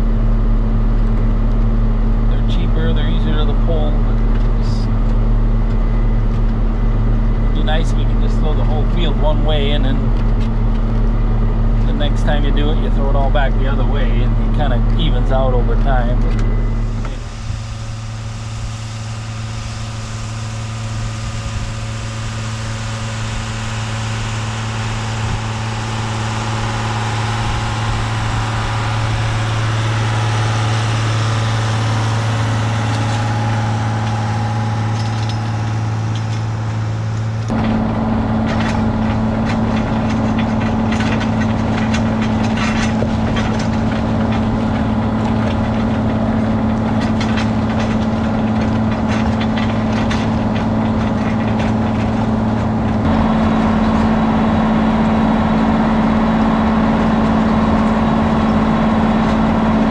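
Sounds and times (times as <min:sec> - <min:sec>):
tractor diesel engine running: 0:00.0 - 0:59.9
plow frame clicking and rattling: 0:02.3 - 0:59.9.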